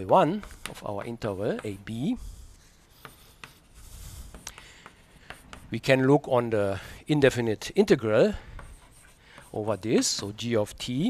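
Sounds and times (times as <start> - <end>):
chalk scratching on blackboard: 0.0 - 5.9, 8.4 - 10.4
chalk tapping on blackboard: 0.0 - 5.9, 8.5 - 10.4.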